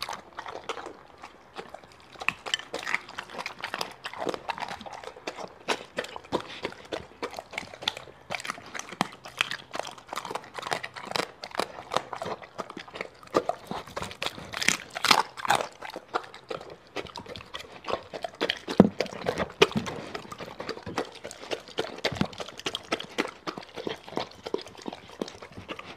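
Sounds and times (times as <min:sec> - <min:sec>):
dog chewing and licking: 0:00.0 - 0:25.9.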